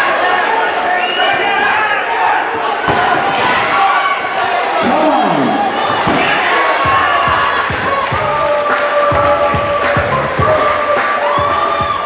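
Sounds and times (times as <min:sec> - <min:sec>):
crowd cheering and shouting: 0:00.0 - 0:12.0
music playing: 0:06.3 - 0:12.0.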